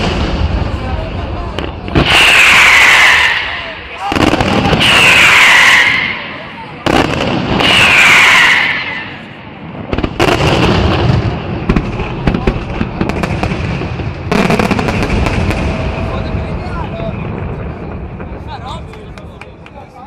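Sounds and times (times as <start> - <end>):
loud firework hiss: 0.0 - 16.0
firework shells bursting with bangs: 1.6 - 16.0.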